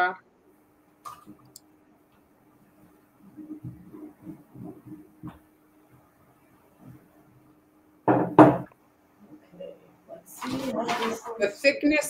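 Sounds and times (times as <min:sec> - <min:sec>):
faint low hum: 0:00.0 - 0:12.0
person speaking: 0:09.6 - 0:11.8.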